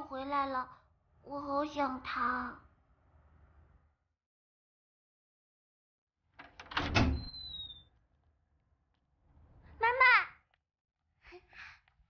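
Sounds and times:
lock clicks and clunks: 6.4 - 7.4
door squeaking open: 6.4 - 7.9.

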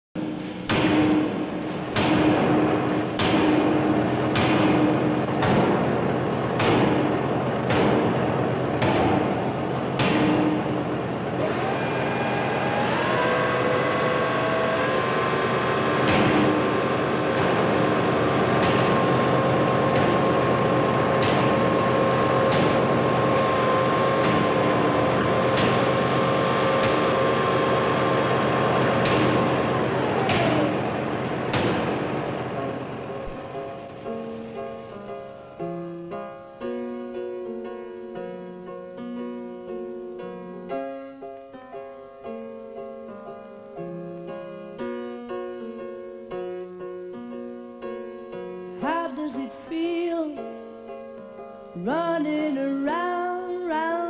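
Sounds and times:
steady machine hum: 0.2 - 35.6
machine whine: 0.2 - 35.8
sharp metallic strikes: 12.9 - 28.2.

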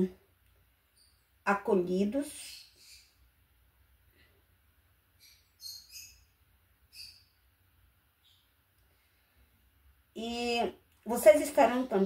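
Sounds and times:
bird chirping: 0.8 - 3.6, 5.0 - 9.3.

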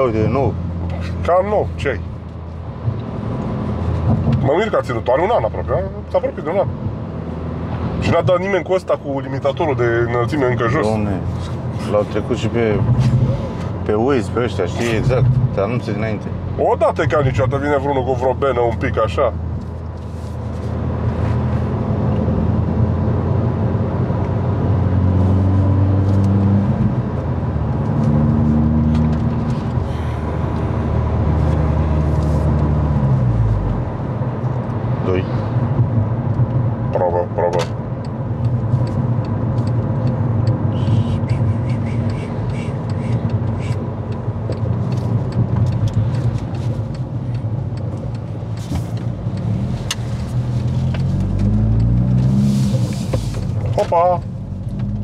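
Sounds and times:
car engine droning: 0.0 - 55.0
tyre and road noise: 0.0 - 55.0.

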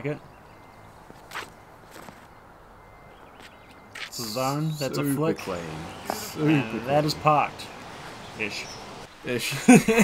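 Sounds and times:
footstep scuffs on pavement: 1.0 - 2.4, 3.2 - 4.2.

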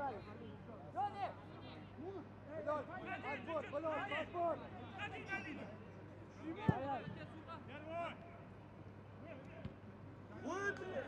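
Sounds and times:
low hum of ground noise: 0.0 - 11.0.

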